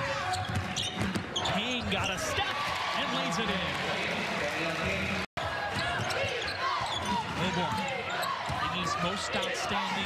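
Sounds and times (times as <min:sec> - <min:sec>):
crowd noise and voices: 0:00.0 - 0:10.0.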